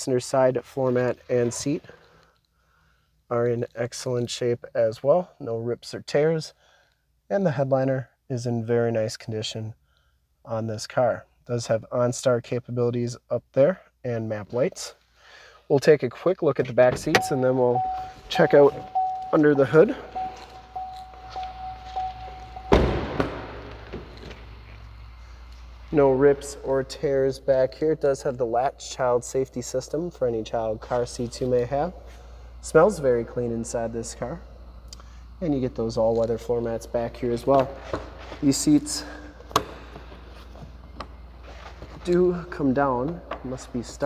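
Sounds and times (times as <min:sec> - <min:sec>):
low steady hum: 0:00.0 - 0:44.0
car door warning chime: 0:17.1 - 0:23.9
car door slamming: 0:22.3 - 0:24.6.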